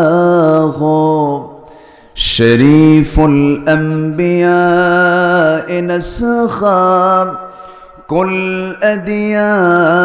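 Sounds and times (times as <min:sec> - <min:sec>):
man chanting unaccompanied: 0:02.2 - 0:10.0.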